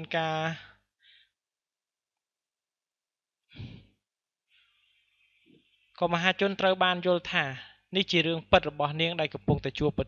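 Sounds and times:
person breathing or sighing: 0:03.5 - 0:04.0.

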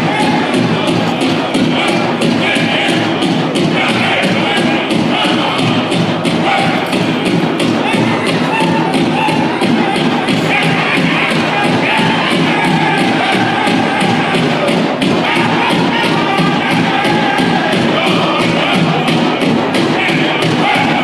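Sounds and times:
high-pitched group singing: 0:00.0 - 0:21.0
large drum beating: 0:00.0 - 0:21.0.

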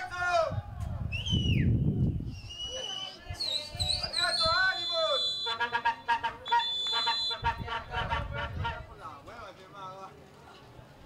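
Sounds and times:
referee's whistle blasts: 0:02.3 - 0:07.8
voices shouting: 0:02.4 - 0:09.0.

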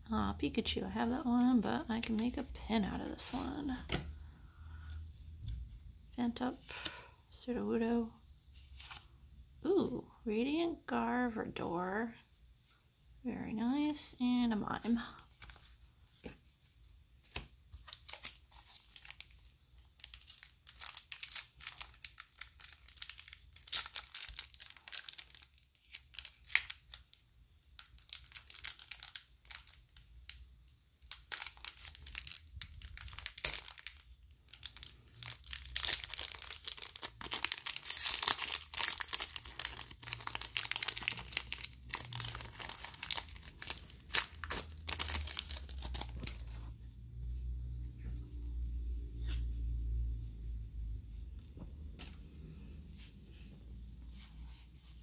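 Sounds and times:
foil wrapper crinkling and tearing: 0:17.9 - 0:27.2, 0:27.8 - 0:30.4, 0:31.0 - 0:46.6.

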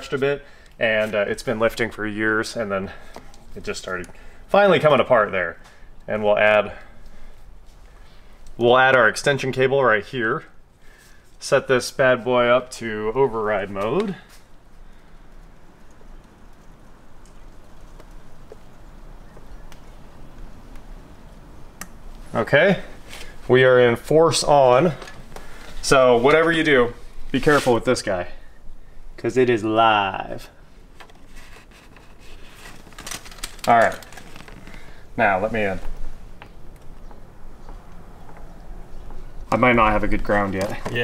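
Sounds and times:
low steady hum: 0:00.0 - 0:41.0
faint clicks and handling noises: 0:03.0 - 0:04.2, 0:13.6 - 0:22.3, 0:24.8 - 0:25.8, 0:30.9 - 0:39.5.

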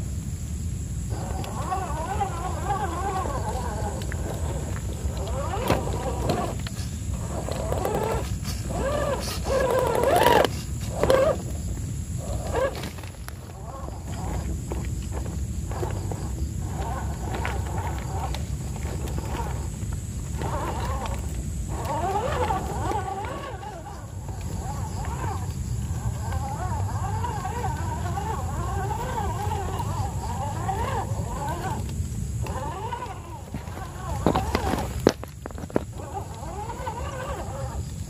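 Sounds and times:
electric motor whining: 0:01.0 - 0:38.0.

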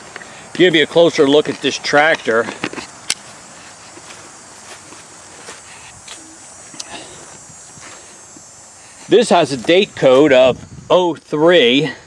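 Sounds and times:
soft footsteps in grass: 0:00.0 - 0:11.7.

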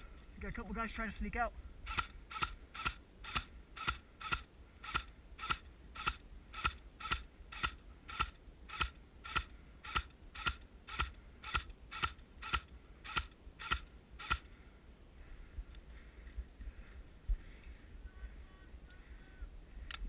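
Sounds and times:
airsoft rifle firing single shots: 0:01.9 - 0:14.5.

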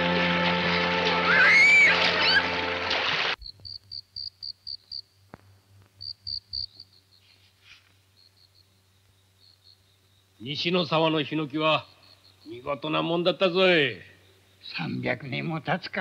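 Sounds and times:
children shouting: 0:01.0 - 0:02.8
insects chirping: 0:03.4 - 0:16.0.

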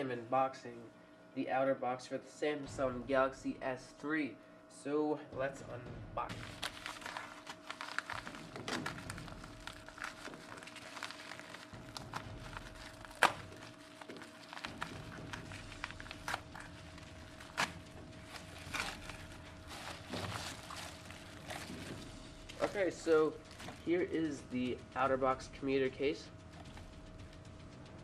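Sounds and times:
paper mailer crinkling and tearing: 0:06.3 - 0:24.4
case sliding out of envelope: 0:06.4 - 0:22.8.

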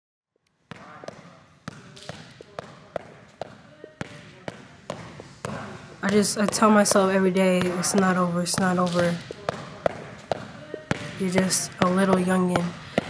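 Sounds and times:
basketball dribbling on gym floor: 0:00.7 - 0:13.0.

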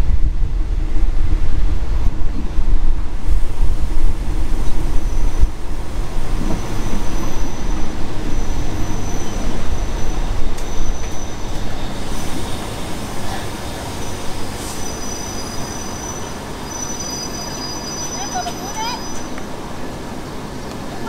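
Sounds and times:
train wheels rumbling on rails: 0:00.0 - 0:21.0
wheel and brake squeals: 0:04.6 - 0:05.6, 0:06.3 - 0:19.4.

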